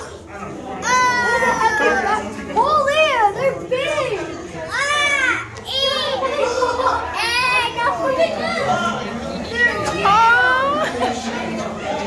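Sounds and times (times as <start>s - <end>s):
children calling out: 0.7s - 12.0s.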